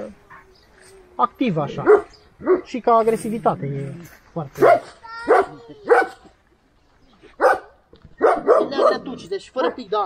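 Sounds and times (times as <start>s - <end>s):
dog barking: 1.8s - 2.7s, 4.6s - 6.2s, 7.4s - 9.8s.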